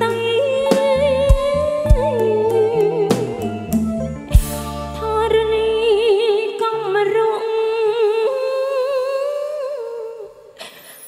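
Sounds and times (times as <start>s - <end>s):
woman singing with vibrato: 0.0s - 3.8s, 4.6s - 10.8s
backing band: 0.7s - 5.6s.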